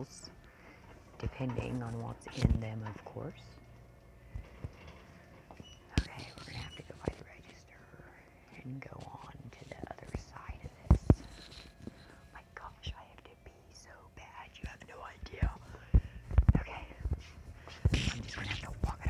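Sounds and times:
person whispering: 5.9s - 11.6s, 12.3s - 19.0s.

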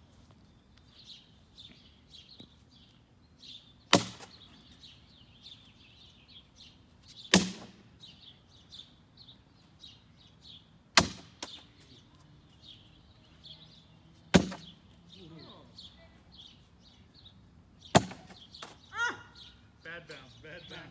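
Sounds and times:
birds chirping: 0.0s - 20.9s.

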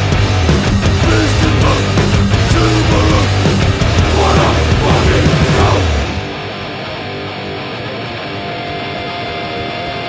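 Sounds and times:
distorted electric guitar: 0.0s - 10.0s.

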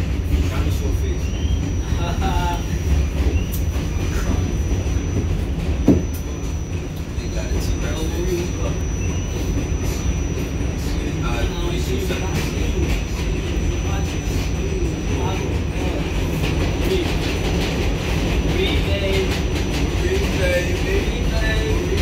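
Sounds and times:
subway car rumbling on track: 0.0s - 22.0s
thin high whine: 0.5s - 17.6s.

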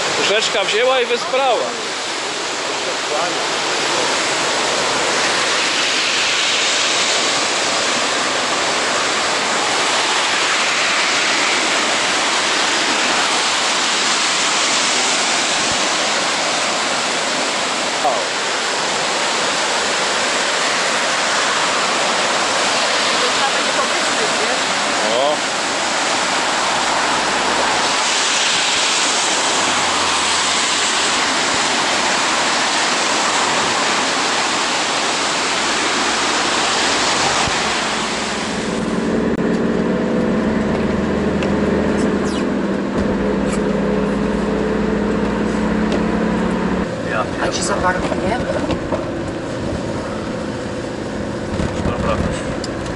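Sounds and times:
river rushing over rapids: 0.0s - 52.9s.

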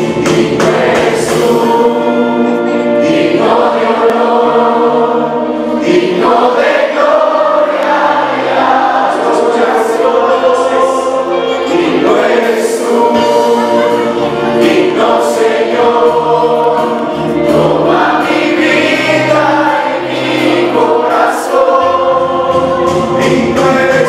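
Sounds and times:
instrumental accompaniment with bass: 0.0s - 24.0s
many voices singing together: 0.0s - 24.0s.

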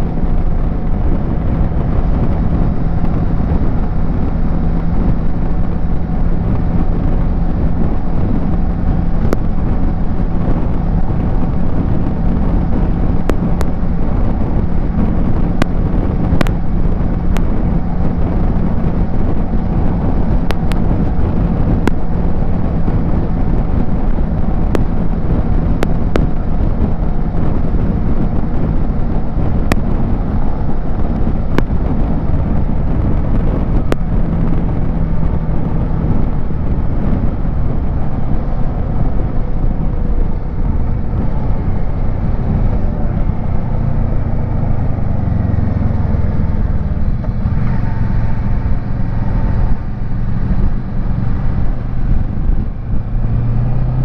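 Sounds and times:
motorcycle engine running: 0.0s - 54.0s
road noise: 0.0s - 54.0s
wind rushing: 0.0s - 54.0s.

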